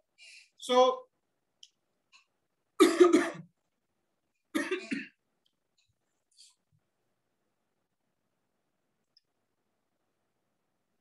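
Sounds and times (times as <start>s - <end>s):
man coughing: 2.8s - 3.5s, 4.6s - 5.2s.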